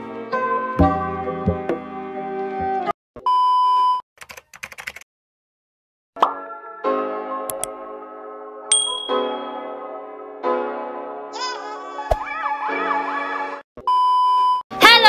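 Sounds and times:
keyboard clicks: 4.2s - 5.0s
bright ding: 8.7s - 9.6s.

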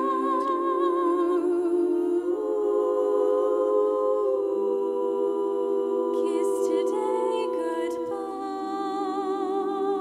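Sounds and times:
women's ensemble singing in harmony: 0.0s - 10.0s.

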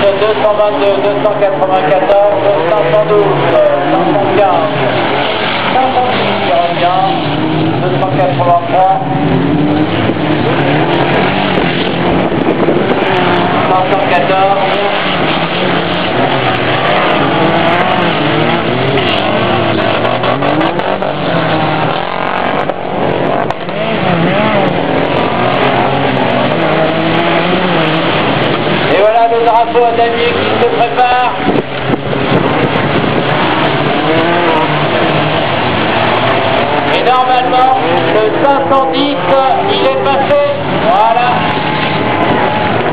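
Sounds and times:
race car engines revving: 0.0s - 42.9s.

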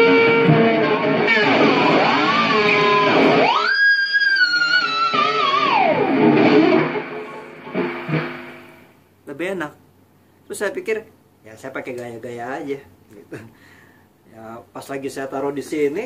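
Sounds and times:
high guitar harmonic squeal: 0.0s - 8.9s
distorted electric guitar swooping: 0.0s - 9.0s.

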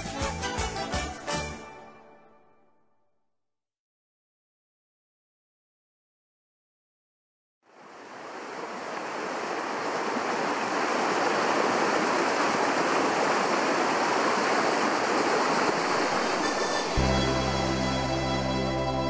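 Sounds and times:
stream rushing over rocks: 7.7s - 18.5s.

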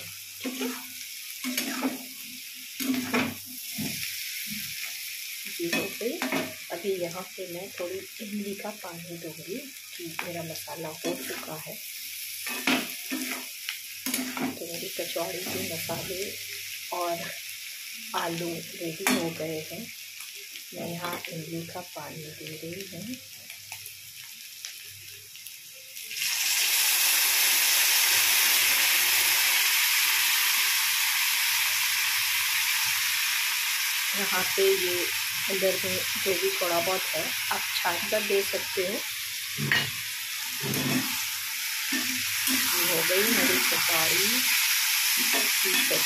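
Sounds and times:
faint frying: 0.0s - 46.0s
potatoes sizzling in oil: 0.0s - 46.0s
spatula scraping pan: 40.6s - 41.2s.

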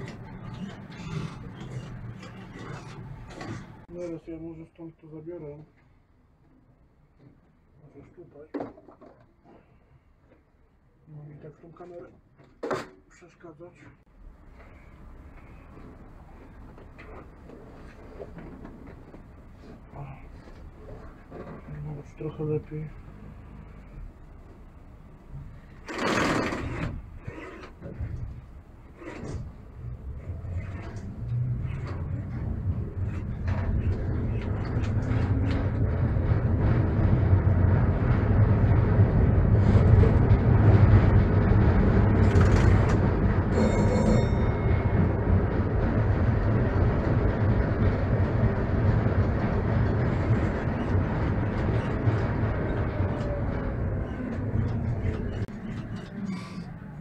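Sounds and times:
tram traction motor hum: 0.0s - 3.9s, 14.2s - 57.0s
wheels rumbling on rails: 0.0s - 4.2s, 14.1s - 57.0s.

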